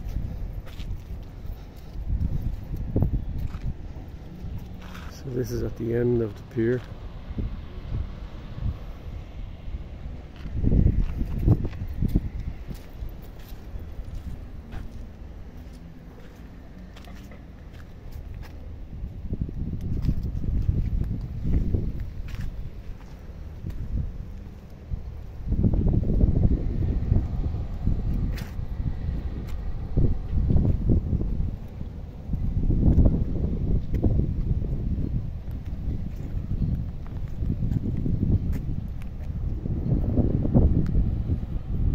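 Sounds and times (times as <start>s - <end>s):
wind buffeting microphone: 0.0s - 41.9s.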